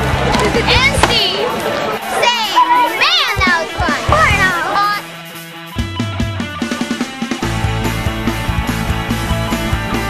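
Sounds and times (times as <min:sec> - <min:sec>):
children talking and calling out: 0:00.4 - 0:05.2.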